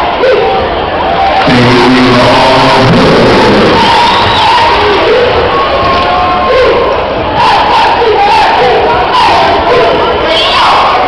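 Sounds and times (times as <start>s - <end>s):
cheerleaders shouting a chant: 0.0s - 11.0s
crowd of spectators: 0.0s - 11.0s.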